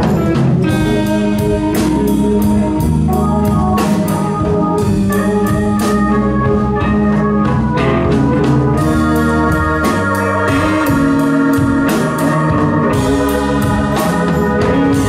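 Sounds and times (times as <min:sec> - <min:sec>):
drum kit with cymbal strikes: 0:00.0 - 0:15.0
electric guitars: 0:00.0 - 0:15.0
organ chords: 0:00.0 - 0:15.0.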